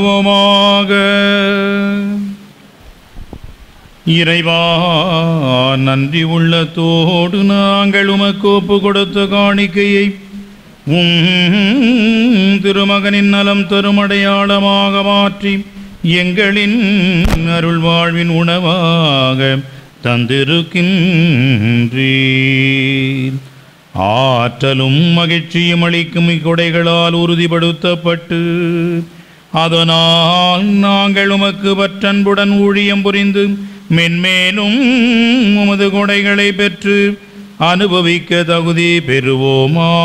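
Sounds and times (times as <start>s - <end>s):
man chanting a prayer: 0.0s - 2.4s, 4.0s - 40.0s.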